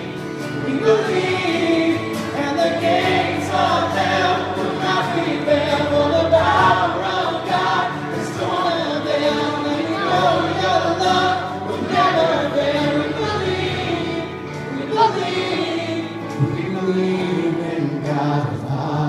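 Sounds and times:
digital piano accompaniment: 0.0s - 19.0s
voices singing worship song: 0.0s - 19.0s.

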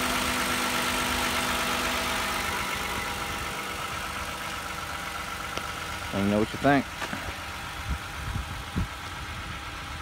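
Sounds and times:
minivan engine idling: 0.0s - 10.0s.

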